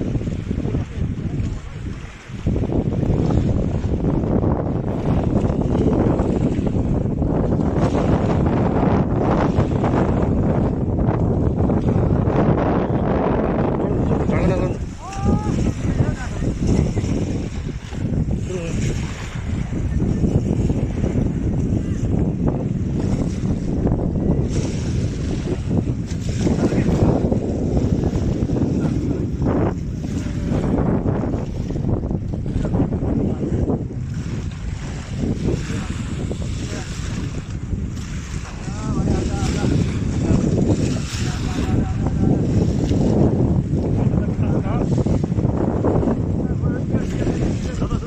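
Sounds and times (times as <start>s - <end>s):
small waves lapping: 0.0s - 48.0s
wind buffeting microphone: 0.0s - 48.0s.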